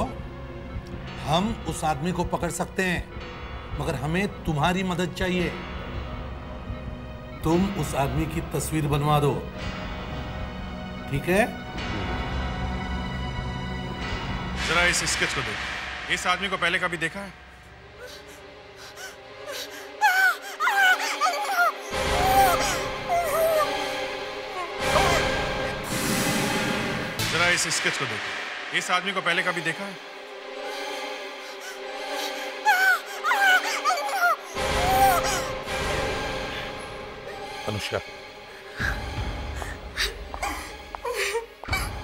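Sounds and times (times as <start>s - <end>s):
woman sobbing: 18.0s - 25.5s, 31.6s - 35.6s, 40.0s - 42.0s
woman wailing and crying: 19.0s - 25.8s, 32.5s - 35.6s, 40.0s - 42.0s.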